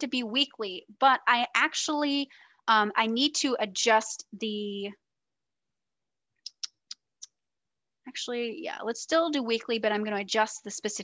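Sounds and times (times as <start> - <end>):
sharp computer clicks: 6.5 - 7.4.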